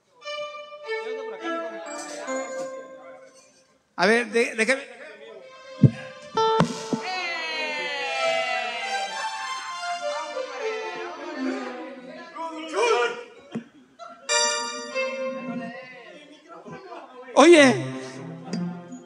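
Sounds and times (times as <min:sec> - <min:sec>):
sharp thumps: 0:05.8 - 0:07.0.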